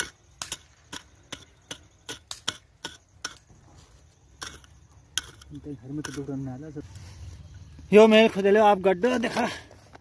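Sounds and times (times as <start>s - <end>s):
hand hoe chopping stony soil: 0.0s - 3.5s, 4.3s - 6.3s.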